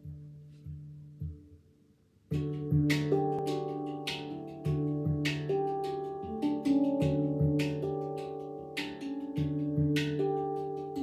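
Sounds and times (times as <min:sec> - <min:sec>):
handpan melody: 0:00.0 - 0:01.6, 0:02.3 - 0:11.0.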